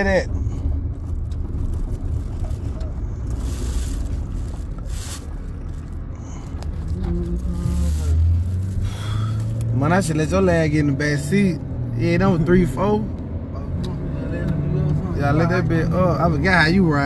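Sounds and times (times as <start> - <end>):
car road and engine rumble: 0.0 - 17.0.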